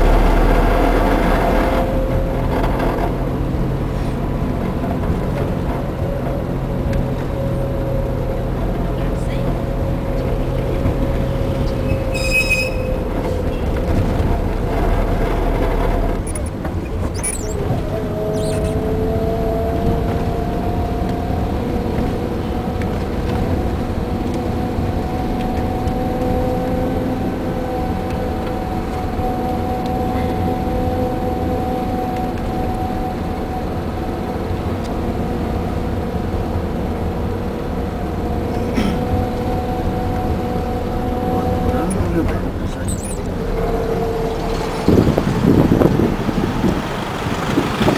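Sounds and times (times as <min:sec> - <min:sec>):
car engine and road noise: 0:00.0 - 0:47.9
brief high tone: 0:38.8 - 0:43.3.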